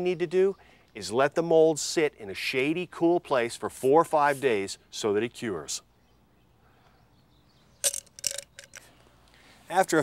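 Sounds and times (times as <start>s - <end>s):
hands handling plastic clicks: 7.8s - 8.9s.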